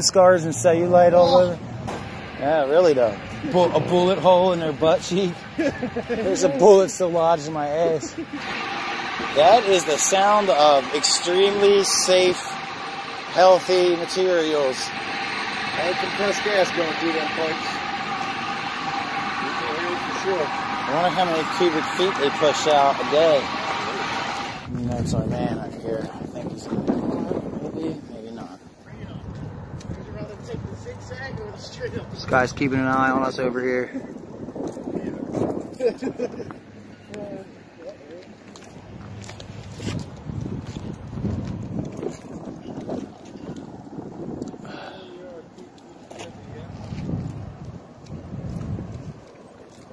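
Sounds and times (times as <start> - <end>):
gas hissing through piping: 0.0 - 24.7
thin steady tone: 0.0 - 24.7
wind buffeting microphone: 0.0 - 37.7, 38.8 - 49.4.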